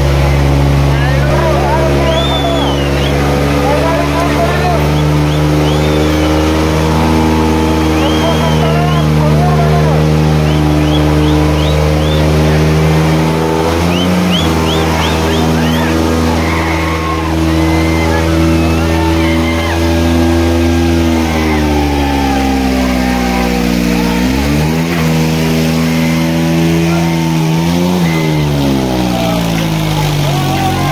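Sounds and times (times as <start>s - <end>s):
crowd voices: 0.0s - 30.9s
tractor engines straining: 0.0s - 30.9s.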